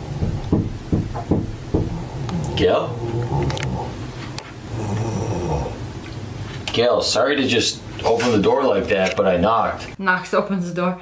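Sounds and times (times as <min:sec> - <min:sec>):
knuckles knocking on wooden door: 0:00.0 - 0:02.2.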